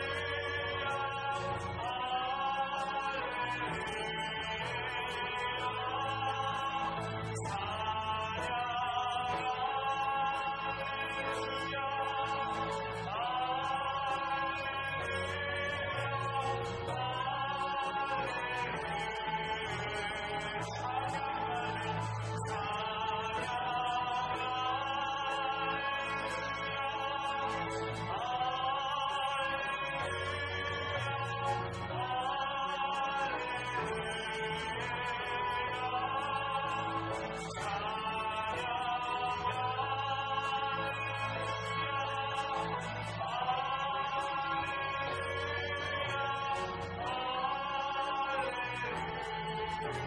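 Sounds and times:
people singing a praise song: 0:00.0 - 0:50.0.

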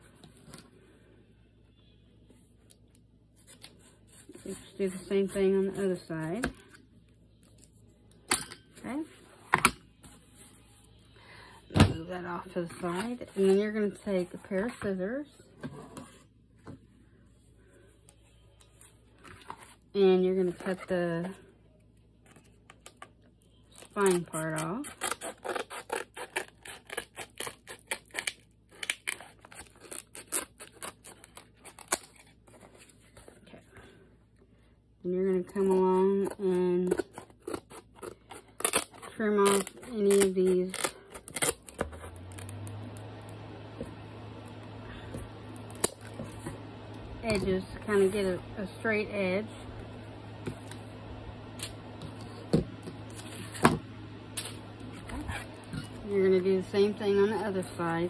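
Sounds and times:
steady low hum: 0:31.3 - 0:58.0
scissors snipping book cover: 0:35.6 - 0:42.5
person talking: 0:47.2 - 0:49.7, 0:56.0 - 0:58.0.

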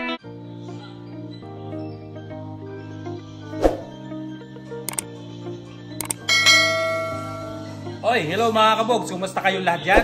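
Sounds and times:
background music: 0:00.0 - 0:10.0
click sound effects: 0:04.9 - 0:05.1, 0:06.0 - 0:06.2
bright bell ding: 0:06.3 - 0:07.7.

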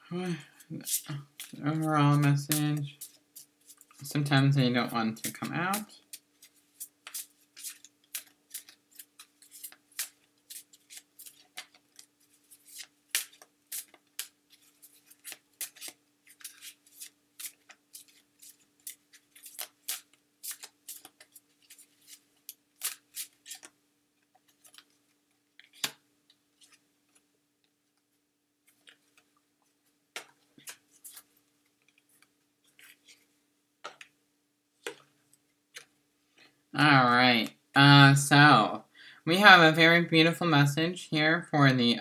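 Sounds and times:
cards being shuffled: 0:00.5 - 0:04.2, 0:05.2 - 0:26.0, 0:26.6 - 0:27.2, 0:28.6 - 0:34.1, 0:34.8 - 0:36.0.

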